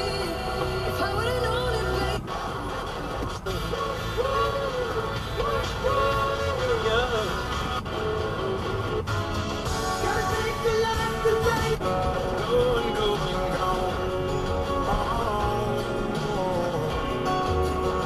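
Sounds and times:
song on car radio: 0.0 - 18.0.

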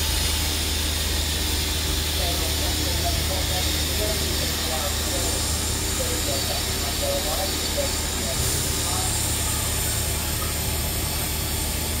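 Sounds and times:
low engine hum: 0.0 - 12.0
steam hissing: 0.0 - 12.0.

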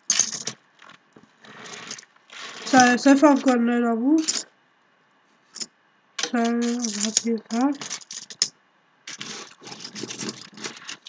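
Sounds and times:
metal tags rattling on wood: 4.2 - 4.5, 5.6 - 8.5, 9.1 - 11.0.

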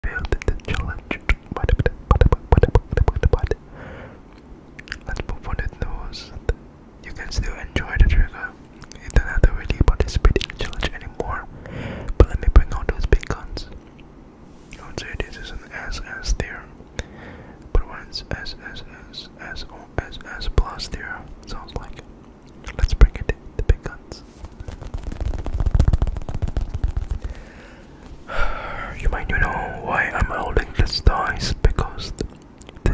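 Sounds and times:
person whispering: 0.0 - 3.6, 4.8 - 11.5, 12.1 - 13.7, 14.7 - 16.8, 17.7 - 22.0, 22.6 - 24.3, 28.3 - 32.9
wet mouth clicks: 0.2 - 3.6, 4.3 - 5.3, 8.7 - 9.2, 21.8 - 22.9, 32.1 - 32.8.

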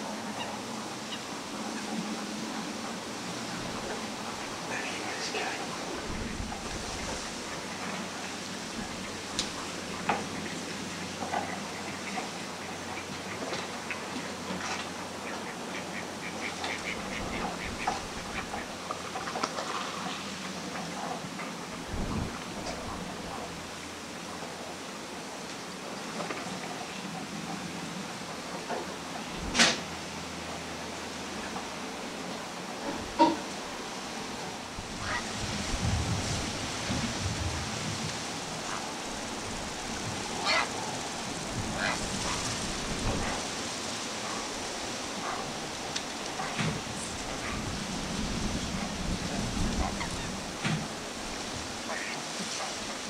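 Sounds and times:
marsh background hiss: 0.0 - 53.0
wind: 0.0 - 53.0
faint bird calls: 40.2 - 42.5.

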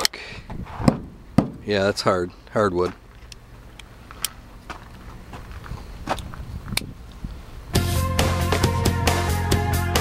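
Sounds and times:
footsteps on gravel: 0.7 - 7.3
music: 7.7 - 10.0.

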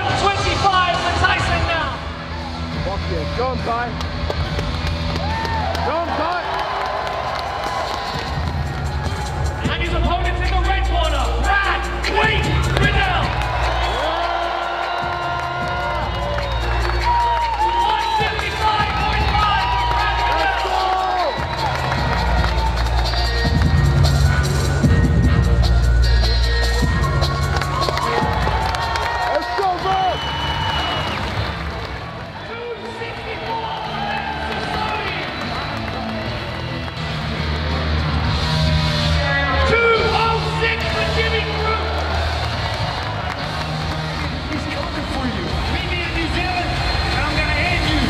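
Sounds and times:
crowd cheering: 0.0 - 48.0
music with heavy bass line: 8.3 - 28.9.

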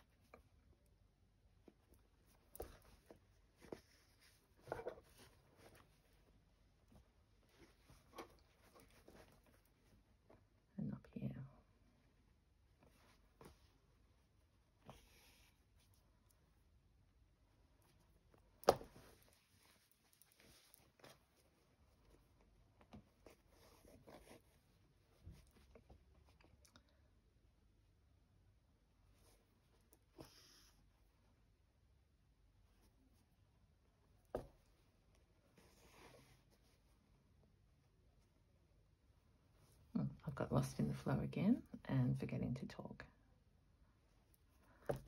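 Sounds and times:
fabric rustling: 1.5 - 10.6, 17.4 - 26.4.

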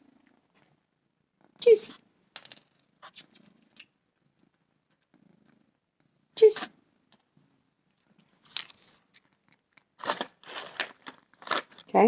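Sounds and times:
cat purring: 0.0 - 1.6, 3.3 - 6.4.

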